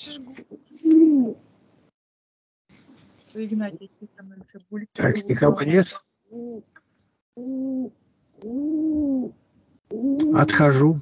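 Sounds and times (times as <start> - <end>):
pigeon cooing: 0.8 - 1.4, 6.3 - 6.7, 7.4 - 9.3, 9.9 - 11.0.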